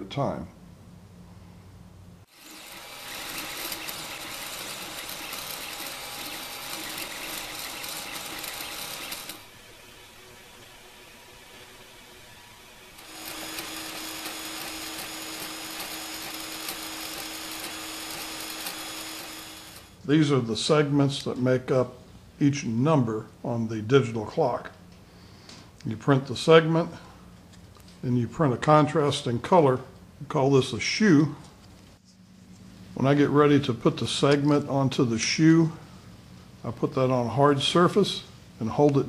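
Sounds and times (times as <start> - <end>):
three-d printer buzzing: 2.3 - 20.0.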